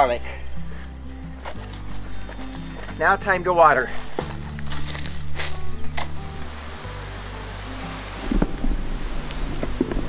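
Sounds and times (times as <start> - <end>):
low bass notes background music: 0.0 - 10.0.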